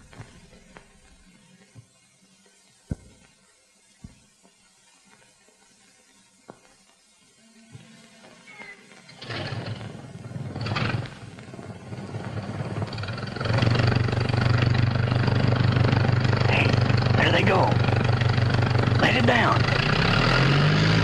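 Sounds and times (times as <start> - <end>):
propeller aircraft engine droning: 9.0 - 21.0.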